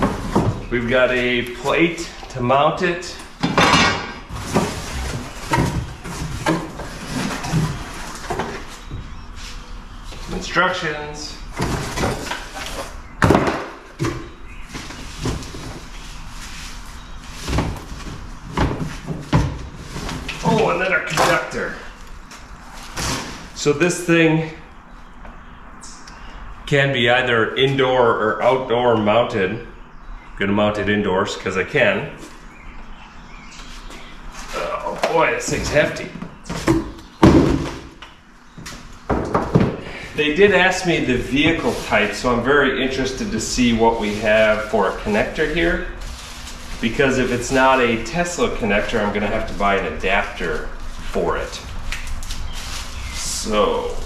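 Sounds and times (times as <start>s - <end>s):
thuds from objects set down: 36.5s - 38.0s.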